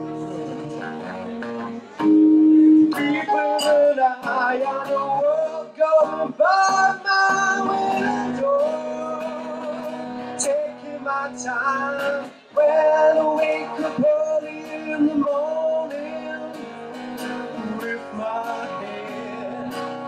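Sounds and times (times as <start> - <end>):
man singing: 0.0 - 1.7, 2.3 - 20.0
strummed acoustic guitar: 0.0 - 20.0.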